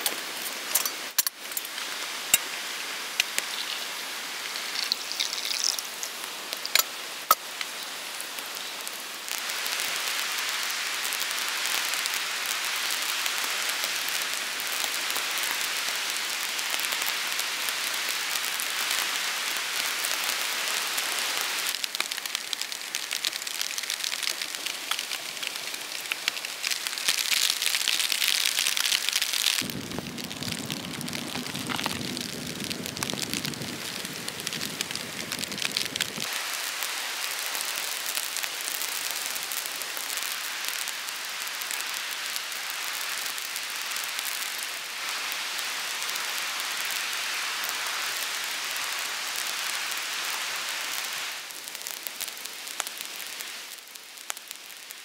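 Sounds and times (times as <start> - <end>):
rain falling in a forest: 0.0 - 55.0.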